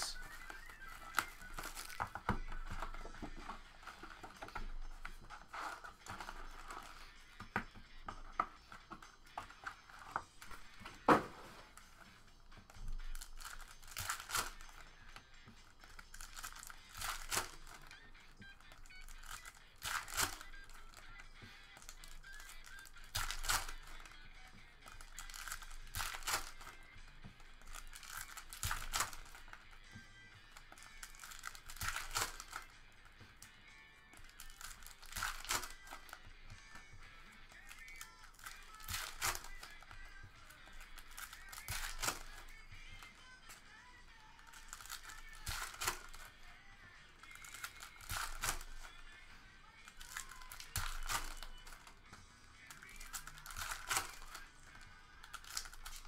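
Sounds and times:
cards rustling: 0.0s - 56.0s
faint background music: 0.0s - 56.0s
foil card packs tearing: 0.0s - 56.0s.

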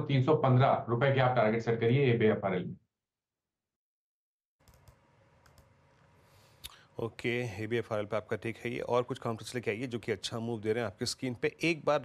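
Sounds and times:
soft clicks: 4.6s - 6.8s.

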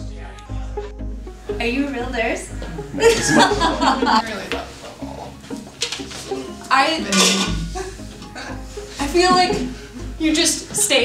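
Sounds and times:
woman laughing: 3.0s - 4.2s, 7.6s - 8.6s.

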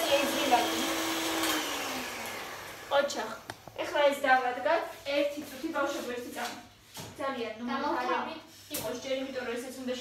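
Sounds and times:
appliance motor winding down: 0.0s - 3.5s.

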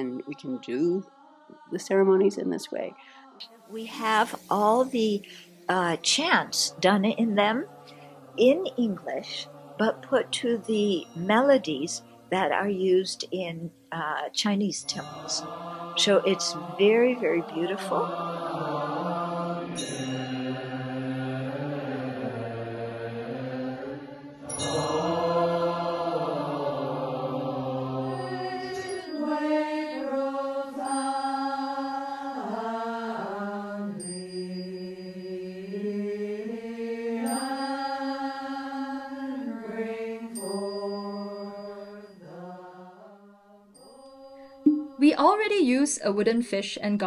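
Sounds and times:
monastics chanting: 0.0s - 45.2s.

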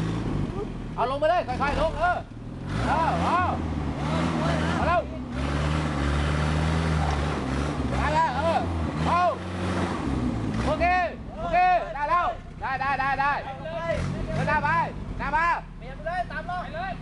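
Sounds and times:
truck engine running at low revs: 0.0s - 17.0s.

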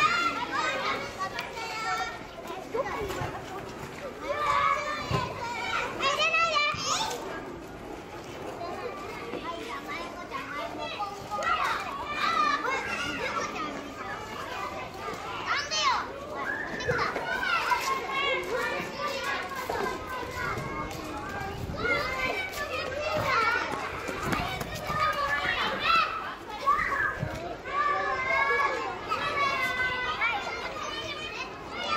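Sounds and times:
children talking and shouting: 0.0s - 31.9s.

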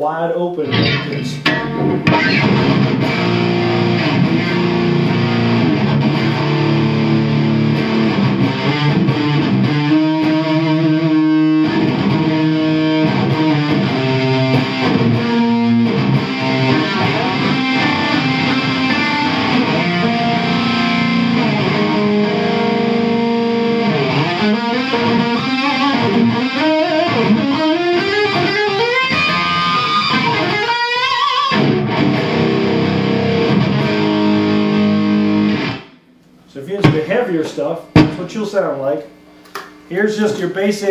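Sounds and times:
distorted electric guitar: 0.6s - 37.2s.

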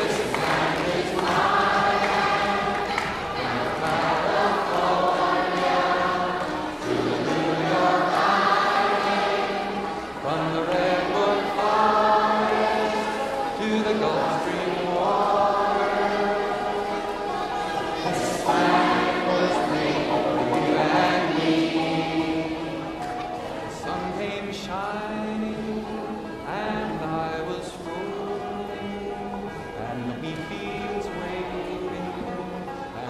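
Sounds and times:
choir singing sustained notes: 0.0s - 33.0s.

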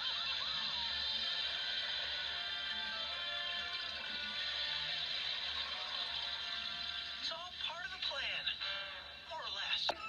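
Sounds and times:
cartoon music through tv speaker: 0.0s - 10.0s.

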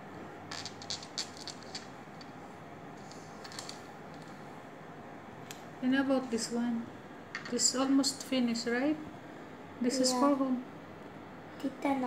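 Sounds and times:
faint room hum: 0.0s - 12.0s
threads scratching on wooden table: 0.5s - 2.4s.

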